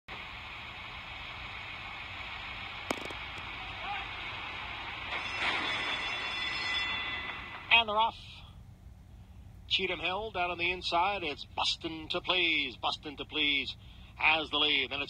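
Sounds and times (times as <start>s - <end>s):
track background hiss: 0.1s - 15.0s.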